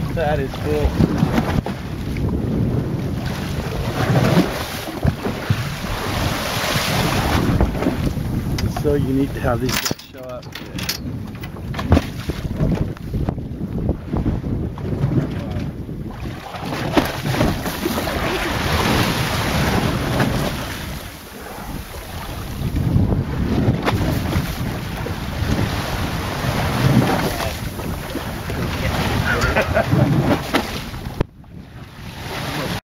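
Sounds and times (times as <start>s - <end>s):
open sea rushing: 0.0s - 32.8s
wind buffeting microphone: 0.0s - 32.8s.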